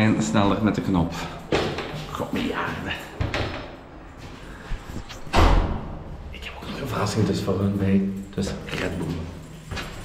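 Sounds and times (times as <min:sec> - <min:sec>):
door swinging open and shut: 0:05.2 - 0:06.0
heavy door thud: 0:05.3 - 0:06.1.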